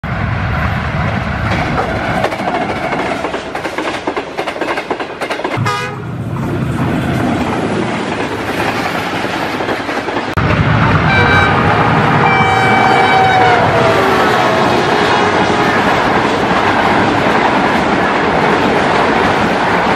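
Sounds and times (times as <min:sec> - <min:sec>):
train engine rumble: 0:00.0 - 0:19.9
train horn blast: 0:05.6 - 0:06.2, 0:10.6 - 0:16.1.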